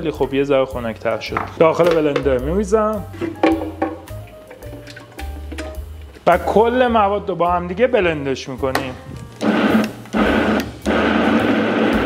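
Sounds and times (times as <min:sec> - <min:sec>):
blender running: 0:09.4 - 0:12.0.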